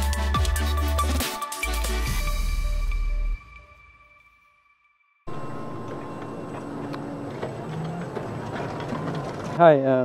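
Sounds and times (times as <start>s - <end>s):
tractor mechanical hum: 5.3s - 10.0s.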